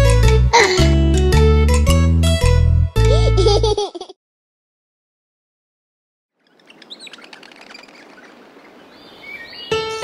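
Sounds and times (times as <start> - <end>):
bright keyboard music: 0.0 - 3.8, 9.6 - 10.0
birds chirping: 6.4 - 10.0
soft outdoor hiss: 6.4 - 10.0.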